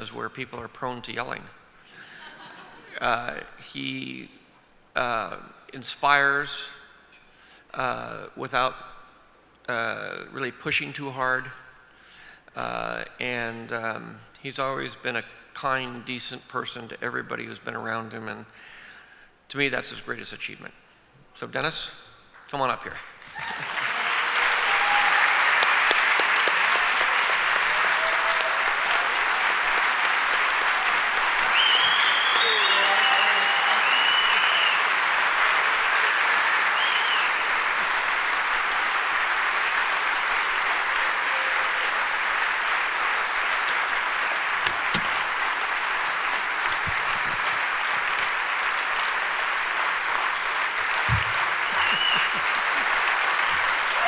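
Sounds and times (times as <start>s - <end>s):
large audience applauding: 23.2s - 54.0s
people cheering: 23.2s - 54.0s.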